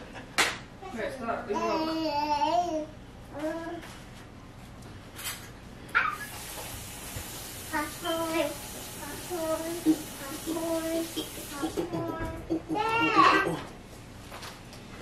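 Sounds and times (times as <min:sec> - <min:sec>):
steady hiss: 0:06.2 - 0:11.9
baby babbling: 0:10.4 - 0:13.7.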